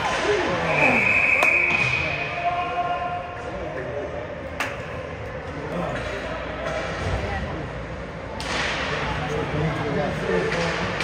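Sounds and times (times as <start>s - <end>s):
spectators' voices: 0.0s - 11.0s
referee's whistle blast: 0.6s - 2.5s.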